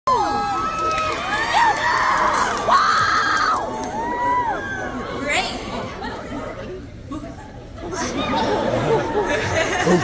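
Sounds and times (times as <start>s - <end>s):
audience screaming and cheering: 0.1s - 5.3s.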